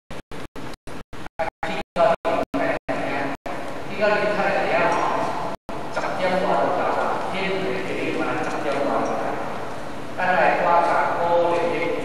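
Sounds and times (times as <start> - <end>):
lecturer talking: 1.4 - 9.6, 10.2 - 12.0.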